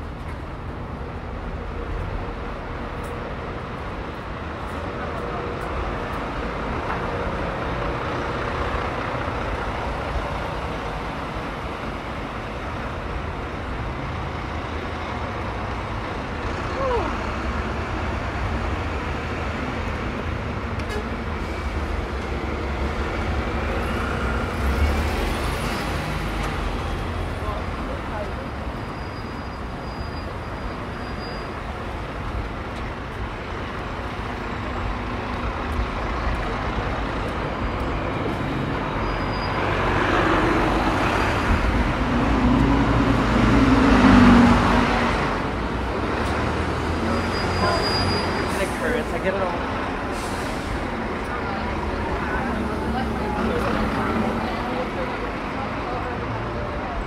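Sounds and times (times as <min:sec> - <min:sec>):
city street traffic rumble: 0:00.0 - 0:57.0.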